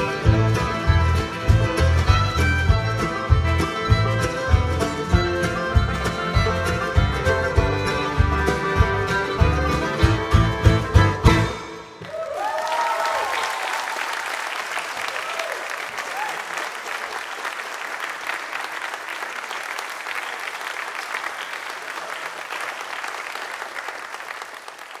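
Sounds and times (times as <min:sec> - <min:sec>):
audience clapping: 0:00.0 - 0:09.9, 0:12.0 - 0:25.0
people whooping: 0:12.0 - 0:16.8.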